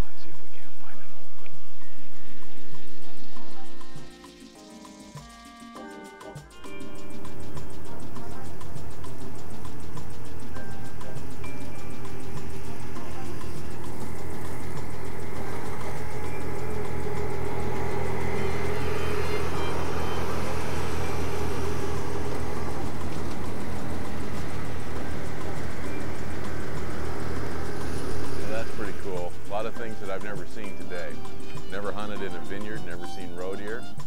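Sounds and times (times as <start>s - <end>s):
trimmer and flail mower working: 1.4s - 34.0s
tractor driving past: 6.8s - 33.2s.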